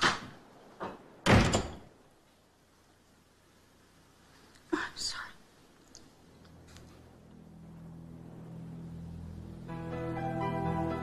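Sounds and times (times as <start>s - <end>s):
door shutting hard: 0.8s - 1.9s.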